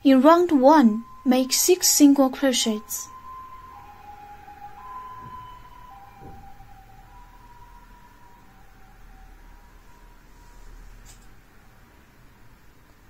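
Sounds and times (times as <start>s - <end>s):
faint two-tone siren: 0.0s - 13.0s.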